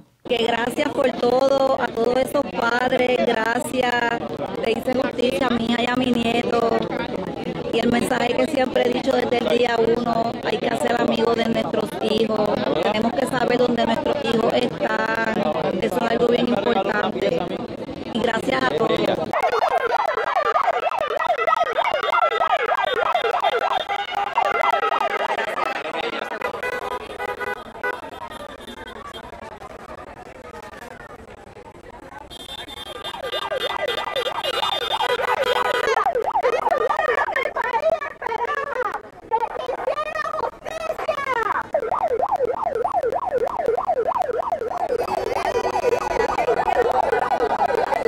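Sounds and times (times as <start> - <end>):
siren wailing in fast warble: 0.3 - 48.0.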